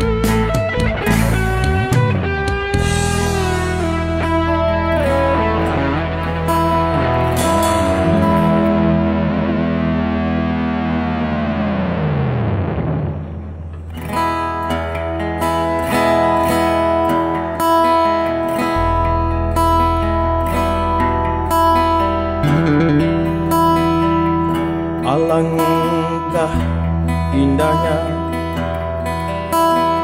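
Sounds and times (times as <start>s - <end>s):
guitars playing: 0.0s - 30.0s
low bass note: 2.8s - 14.0s, 18.9s - 24.9s.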